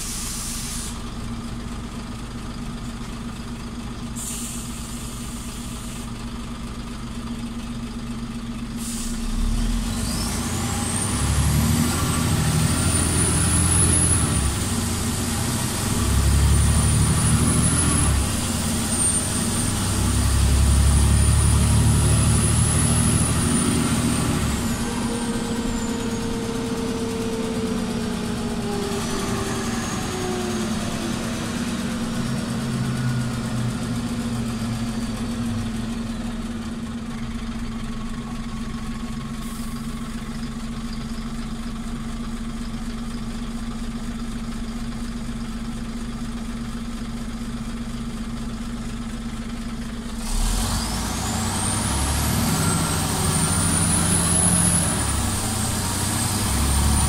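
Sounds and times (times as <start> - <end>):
bus drivetrain whine: 0.0 - 57.0
bus engine idling: 0.0 - 57.0.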